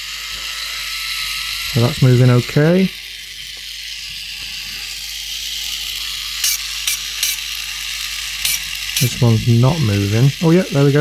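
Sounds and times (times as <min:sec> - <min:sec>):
toy motor whirring: 0:00.0 - 0:11.0.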